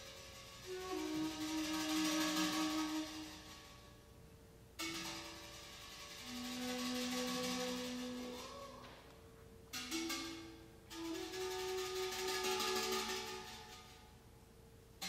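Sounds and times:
low flute notes: 0.0 - 4.0, 6.2 - 14.0
steel pan chords: 0.0 - 15.0.

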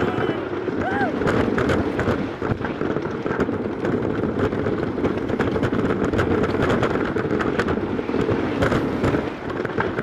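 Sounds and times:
roller coaster clattering on track: 0.0 - 10.0.

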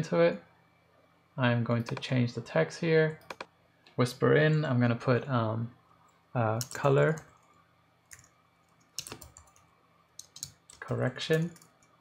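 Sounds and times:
keyboard typing: 1.8 - 2.1, 3.2 - 3.5, 6.6 - 7.5, 8.1 - 12.0.

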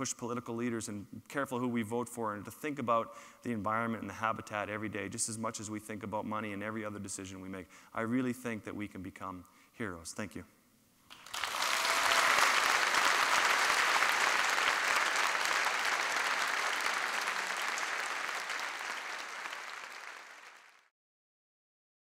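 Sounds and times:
audience applauding: 11.1 - 20.9.

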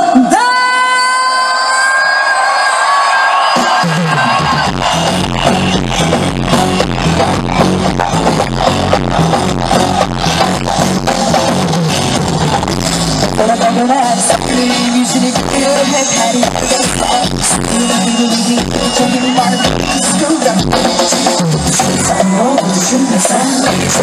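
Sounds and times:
live pop band over loudspeakers: 0.0 - 24.0.

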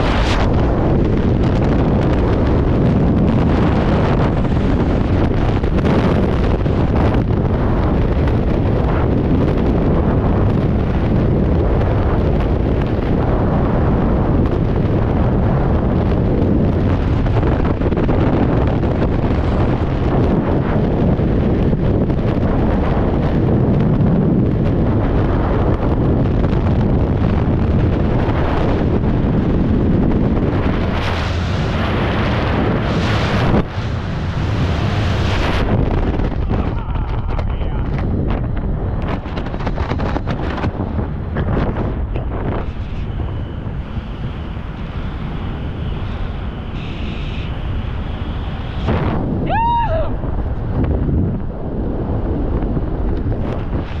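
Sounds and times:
freefall wind rushing: 0.0 - 54.0.

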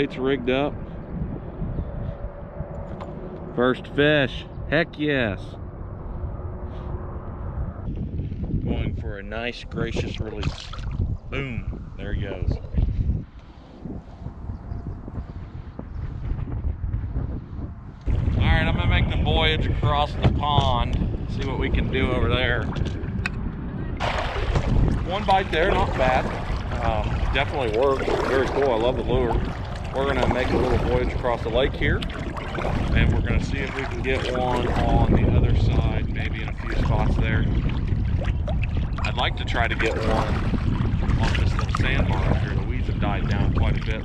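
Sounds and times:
wind buffeting microphone: 0.0 - 44.0
kayak paddle strokes in water: 24.0 - 35.2.

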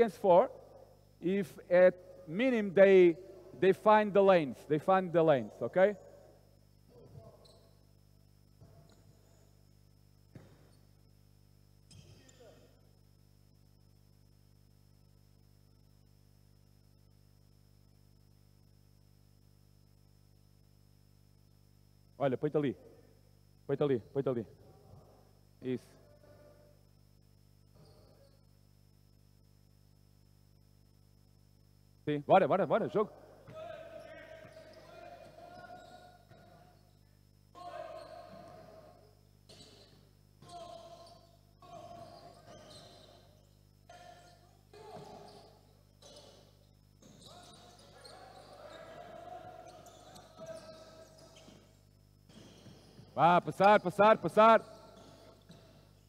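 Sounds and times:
faint steady hum: 0.0 - 56.0
faint basketball bouncing: 10.2 - 10.9, 33.4 - 36.9, 37.5 - 56.0.

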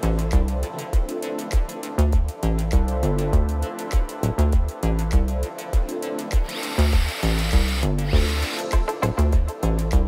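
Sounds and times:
electronic music with steady beat: 0.0 - 10.0
cordless drill boring into wood: 6.4 - 8.8.

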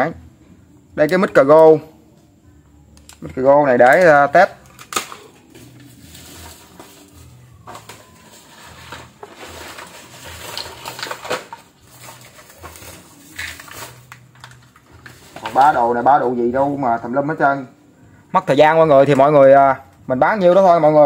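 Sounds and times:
small hard objects clattering: 3.2 - 15.9.

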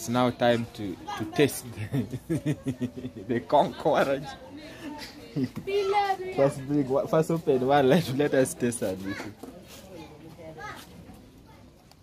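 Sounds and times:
murmur of voices: 0.0 - 12.0
children's voices: 4.6 - 7.0, 8.8 - 12.0.

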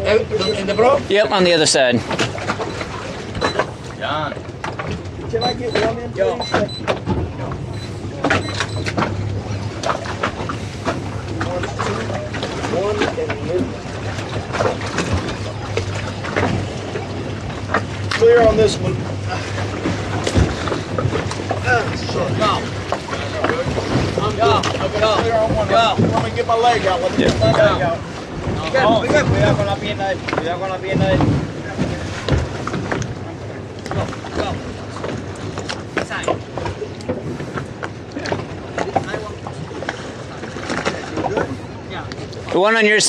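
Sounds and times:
outboard motors idling: 0.0 - 43.0
water noise: 0.0 - 43.0
wind: 0.0 - 43.0.

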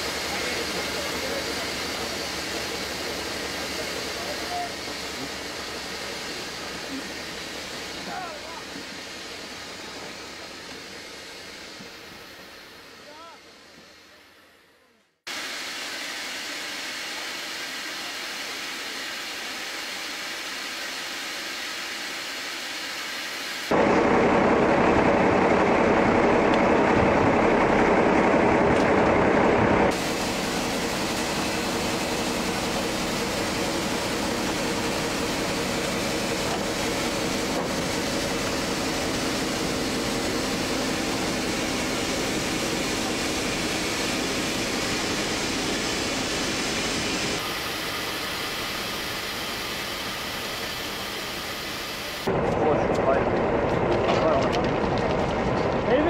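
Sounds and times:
steady rushing noise: 15.3 - 56.0.

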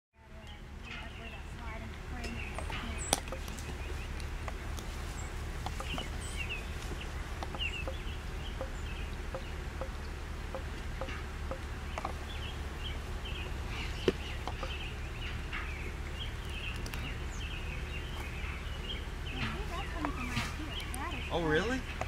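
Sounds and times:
steady low rumble: 0.2 - 22.0
high bird chirps: 0.5 - 21.9.

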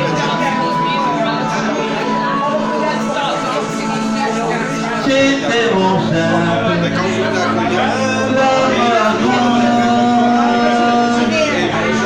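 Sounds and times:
man singing long held note: 0.0 - 12.0.

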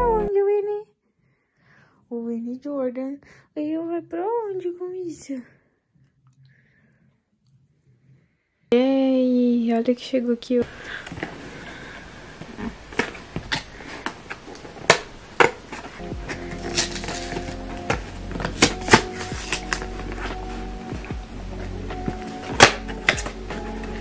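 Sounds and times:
soft background music: 0.0 - 0.4, 15.2 - 24.0
cardboard box being opened: 12.2 - 20.8.

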